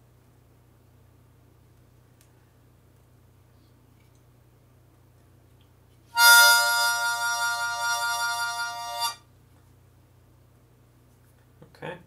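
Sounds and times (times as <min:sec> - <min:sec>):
harmonica chord with vibrato: 0:06.2 - 0:09.2.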